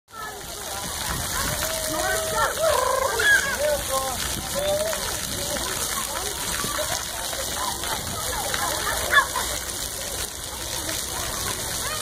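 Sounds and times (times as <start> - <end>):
children's voices: 0.1 - 12.0
water jets spraying and splashing: 0.1 - 12.0.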